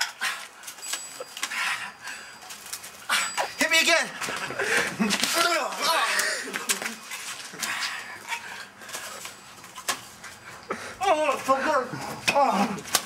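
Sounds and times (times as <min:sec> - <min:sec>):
man breathing hard and wheezing: 0:00.0 - 0:03.6, 0:04.5 - 0:05.0, 0:10.3 - 0:11.0
man groaning in pain: 0:11.9 - 0:13.0.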